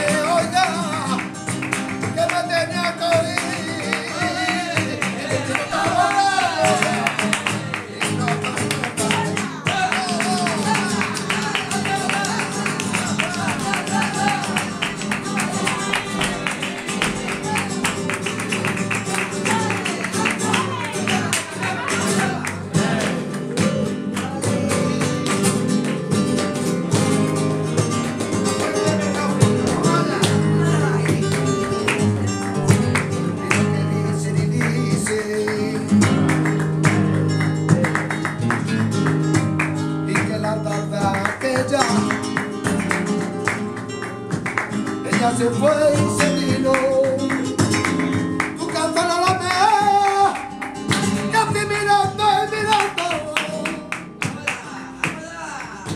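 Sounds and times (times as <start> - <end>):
flamenco guitars strumming: 0.0 - 55.9
person singing: 2.2 - 18.0, 19.2 - 25.4, 28.5 - 37.2, 51.2 - 55.9.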